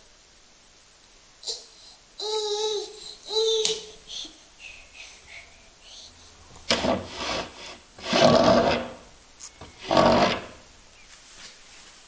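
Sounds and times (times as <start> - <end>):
rough rubbing and scraping: 6.7 - 10.6.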